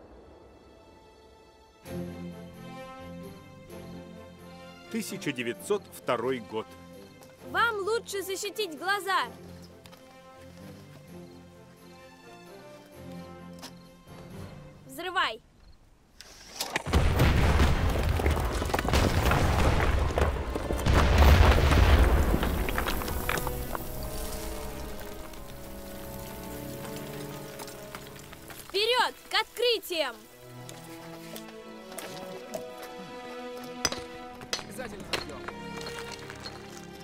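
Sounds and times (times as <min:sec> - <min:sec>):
falling debris: 0:16.6 - 0:29.4, 0:33.8 - 0:37.0
loud explosion: 0:16.9 - 0:23.4.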